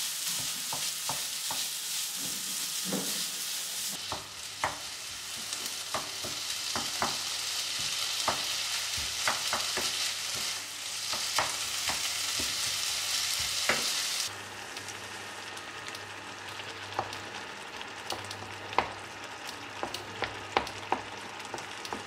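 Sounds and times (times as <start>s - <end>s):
food sizzling in a frying pan: 0.0s - 22.0s
wooden spatula scraping a pan: 0.2s - 4.0s.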